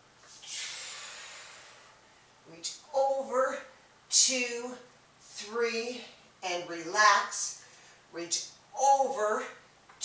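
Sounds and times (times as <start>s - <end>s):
woman exhaling forcefully: 0.4s - 2.0s.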